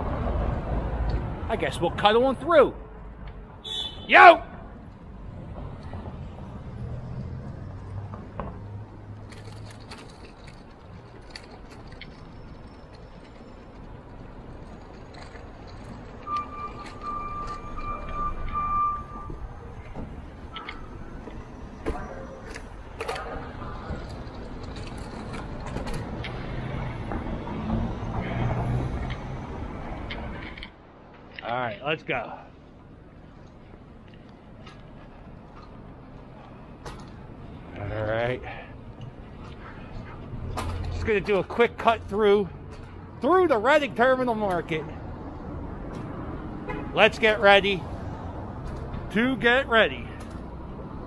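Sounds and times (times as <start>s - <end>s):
cars driving past: 0.0s - 51.0s.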